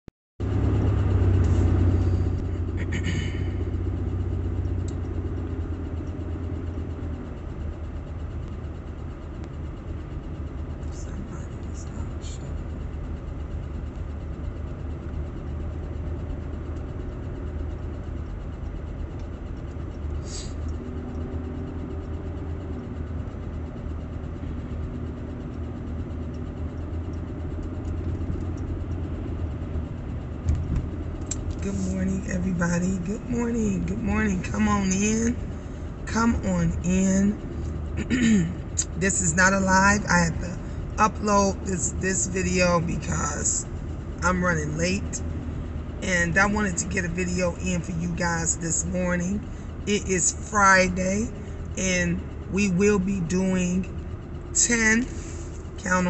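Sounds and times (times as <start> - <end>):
car engine rumbling: 0.4 - 56.0.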